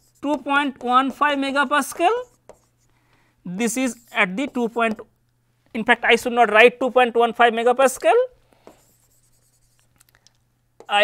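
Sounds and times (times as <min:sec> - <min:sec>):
stylus scratching on tablet screen: 0:00.0 - 0:02.9, 0:03.6 - 0:05.1, 0:08.6 - 0:10.0.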